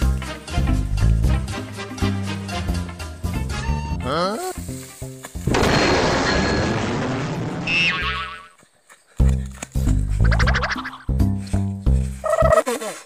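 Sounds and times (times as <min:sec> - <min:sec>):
background music: 0:00.0 - 0:06.4, 0:09.2 - 0:13.0.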